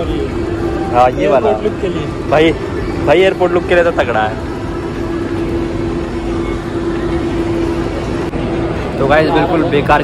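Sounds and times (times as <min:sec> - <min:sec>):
mid-pitched hum: 0:00.0 - 0:10.0
rushing shop background noise: 0:00.0 - 0:10.0.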